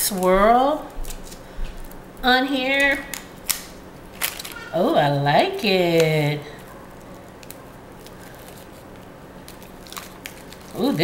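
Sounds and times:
low room hum: 0:00.0 - 0:11.0
soap wrapper handling: 0:03.1 - 0:04.7, 0:07.2 - 0:11.0.

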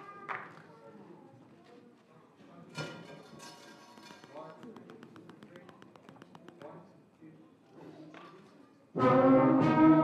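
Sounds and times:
light fast taps: 0:04.0 - 0:07.0
brass: 0:09.0 - 0:10.0.

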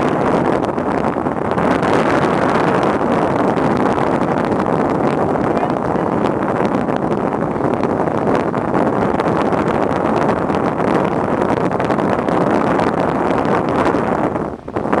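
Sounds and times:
boat rumble: 0:00.0 - 0:15.0
water under boat: 0:00.0 - 0:15.0
wind buffeting microphone: 0:00.0 - 0:15.0.

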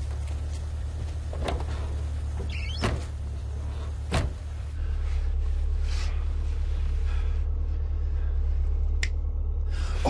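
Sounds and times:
car engine idling: 0:00.0 - 0:10.0
car doors clunking shut: 0:01.2 - 0:04.6.

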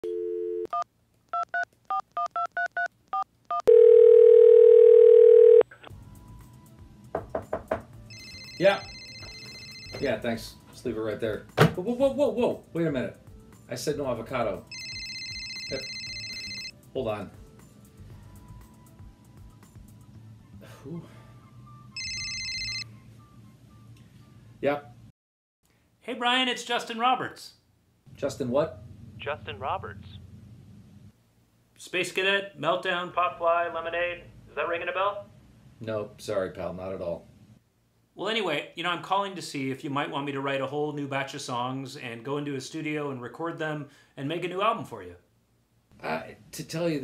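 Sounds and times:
touch-tone dialling beeps: 0:01.4 - 0:05.6, 0:22.0 - 0:22.8
telephone dial tone: 0:03.5 - 0:05.8, 0:08.1 - 0:10.0, 0:14.7 - 0:16.7, 0:22.0 - 0:22.9
ringback tone: 0:22.0 - 0:22.9.

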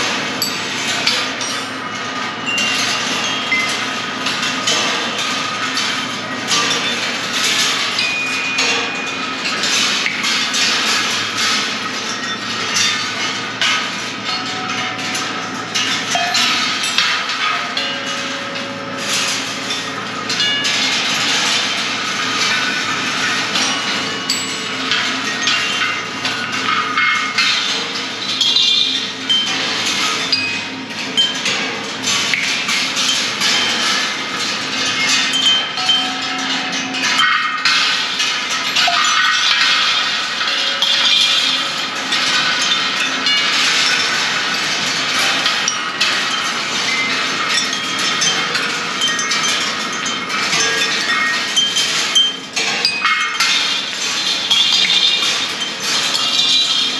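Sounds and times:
balls clattering on wire tracks: 0:00.0 - 0:56.9.

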